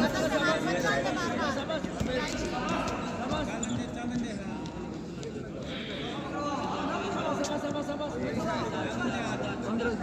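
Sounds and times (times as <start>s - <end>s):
people shouting and talking: 0.0s - 10.0s.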